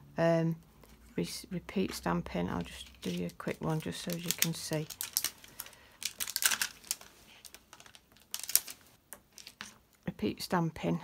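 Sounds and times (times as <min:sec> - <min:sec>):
paper rustling: 0:01.9 - 0:09.8.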